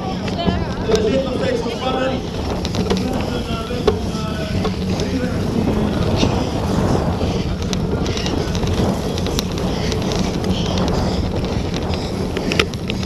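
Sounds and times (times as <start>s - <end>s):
bicycle rattles and clicks: 0.0s - 13.0s
wind buffeting microphone: 0.0s - 13.0s.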